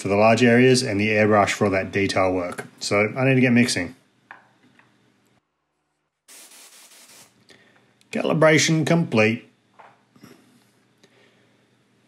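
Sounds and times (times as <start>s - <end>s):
spray gun hissing: 6.3s - 7.4s.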